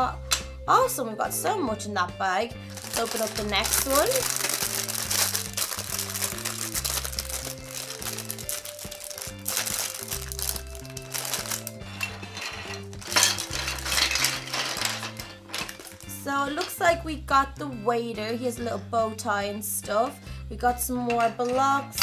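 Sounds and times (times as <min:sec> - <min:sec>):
background music: 0:00.0 - 0:22.0
plastic bag crinkling: 0:02.7 - 0:16.2
plastic bricks clattering on table: 0:02.7 - 0:16.2.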